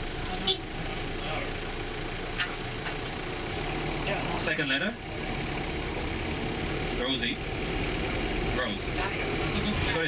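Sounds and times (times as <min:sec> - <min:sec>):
bus engine running: 0:00.0 - 0:10.0.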